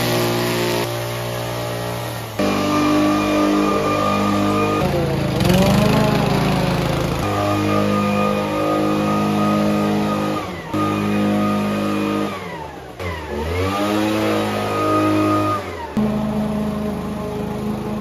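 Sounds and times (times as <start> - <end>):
lawn mower engine: 0.0 - 18.0
leaf blower engine: 0.0 - 18.0.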